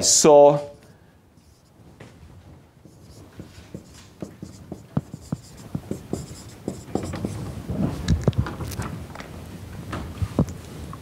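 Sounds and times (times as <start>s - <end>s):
marker squeaking on whiteboard: 2.8s - 7.5s.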